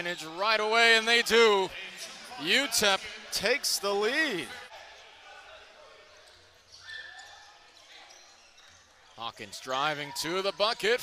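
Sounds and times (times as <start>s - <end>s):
basketball court noise: 0.0s - 11.0s.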